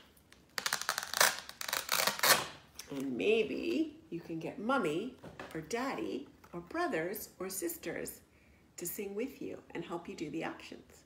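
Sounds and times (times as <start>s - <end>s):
velcro fastener tearing: 0.0s - 3.0s.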